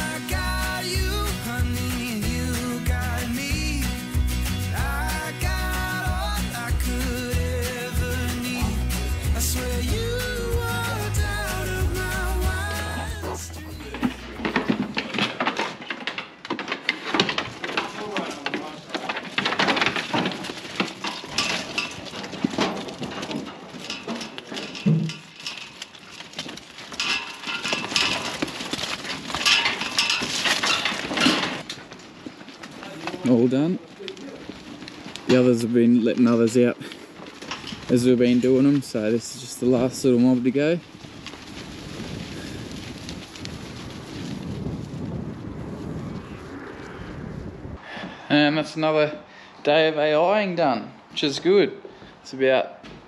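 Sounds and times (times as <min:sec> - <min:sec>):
metal panels clinking and rattling: 0:00.0 - 0:33.8, 0:37.3 - 0:40.8
sheep hooves clattering: 0:00.0 - 0:47.2
wind buffeting microphone: 0:38.8 - 0:48.3.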